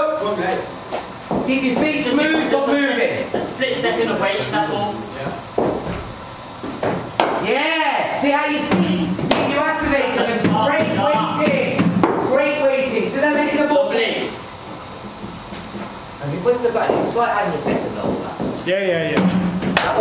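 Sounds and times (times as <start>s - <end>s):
voices talking: 0.0s - 5.6s, 7.4s - 14.5s
cricket ball struck by bat: 7.2s - 7.4s.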